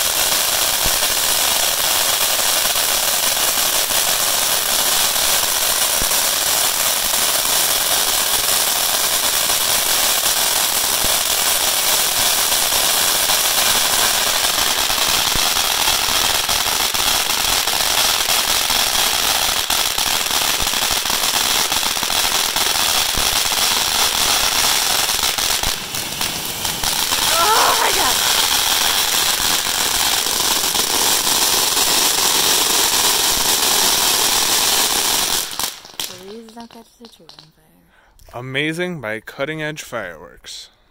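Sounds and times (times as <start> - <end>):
firework fountain hissing: 0.0 - 37.5.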